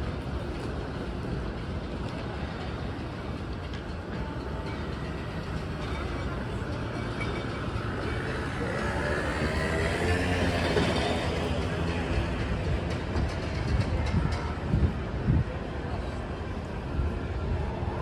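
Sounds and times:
passers-by voices: 0.0 - 18.0.

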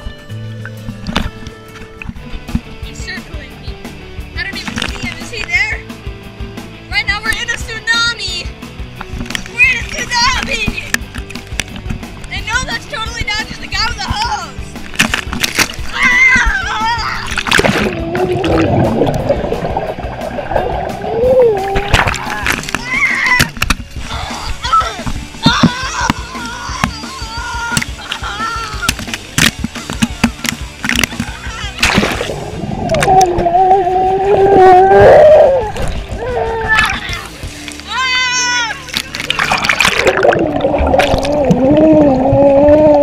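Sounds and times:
pool water splashing: 0.6 - 43.0
underwater splashing and bubbling: 14.8 - 25.6, 31.8 - 37.7, 38.9 - 43.0
child crying: 15.9 - 17.4, 21.1 - 21.9, 22.8 - 23.5, 24.1 - 28.9, 32.9 - 37.3, 41.0 - 43.0.

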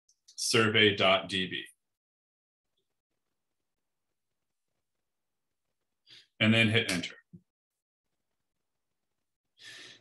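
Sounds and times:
man's soft breath: 9.6 - 10.0.

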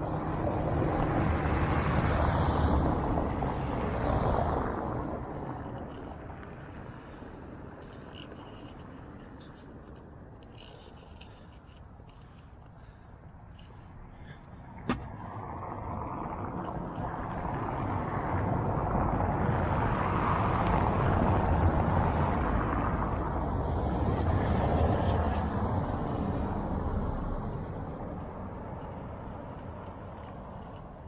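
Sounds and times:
cars driving on cobbles: 0.0 - 31.0.

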